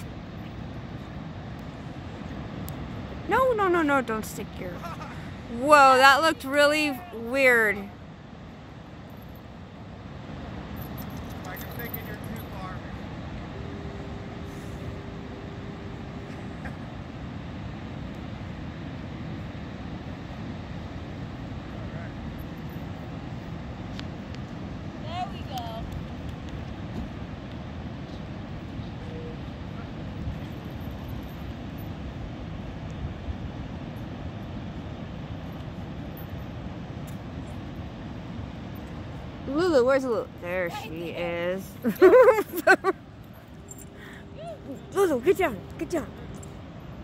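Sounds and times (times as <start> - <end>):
waves breaking on beach: 0.0 - 47.0.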